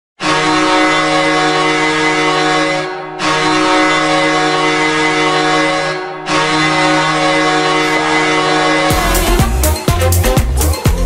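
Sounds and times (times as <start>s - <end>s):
goal horn blasts: 0.2s - 10.6s.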